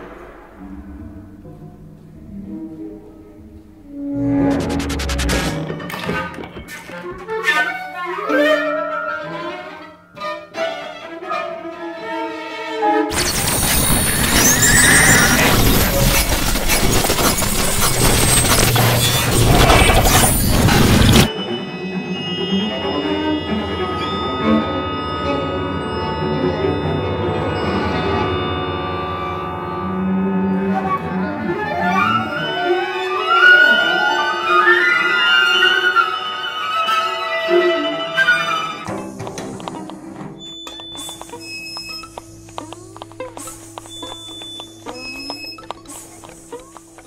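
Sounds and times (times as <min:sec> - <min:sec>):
low electronic drone: 0:00.0 - 0:06.6, 0:13.1 - 0:33.1
crackling static: 0:04.2 - 0:05.6, 0:13.1 - 0:21.3, 0:41.0 - 0:47.0
scattered clicks: 0:38.9 - 0:47.0.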